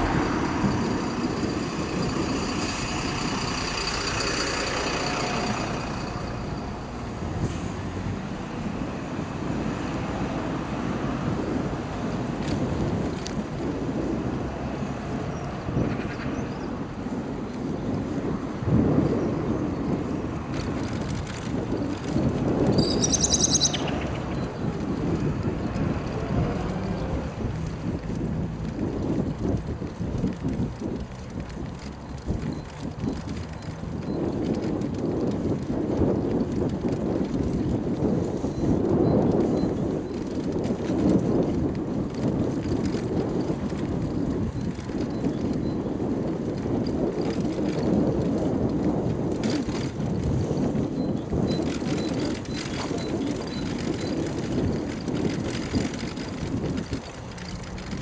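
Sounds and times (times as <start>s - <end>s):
bicycle tyre and road noise: 0.0s - 58.0s
wind buffeting microphone: 0.0s - 58.0s.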